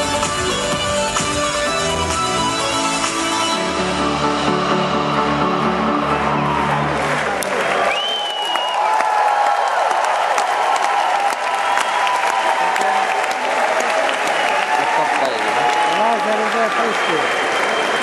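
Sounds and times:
electronic music with heavy bass: 0.0s - 7.7s
audience applauding: 5.8s - 18.0s.

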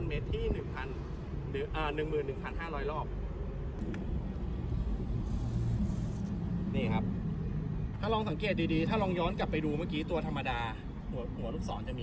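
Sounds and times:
motor vehicle rumble: 3.1s - 11.8s.

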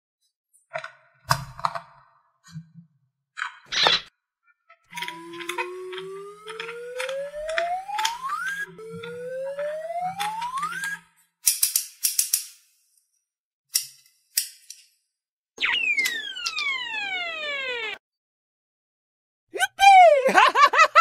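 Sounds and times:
cartoon whistle glides: 5.3s - 11.1s, 15.6s - 18.0s.

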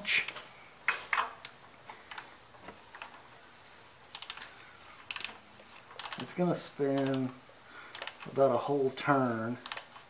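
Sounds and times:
ratchet wrench clicking: 4.1s - 4.4s, 5.1s - 5.4s, 6.0s - 7.3s, 7.9s - 8.3s, 9.6s - 9.9s.

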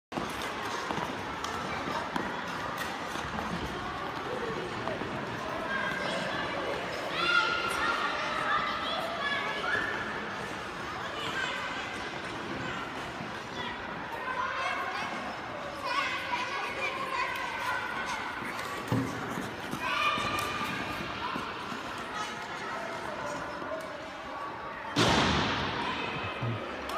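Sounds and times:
background hubbub of people: 0.1s - 26.9s.

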